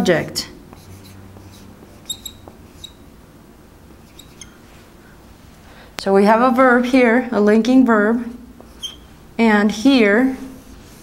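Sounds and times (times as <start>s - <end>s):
marker squeaking on whiteboard: 0.7s - 3.1s, 3.9s - 4.7s, 8.6s - 9.2s.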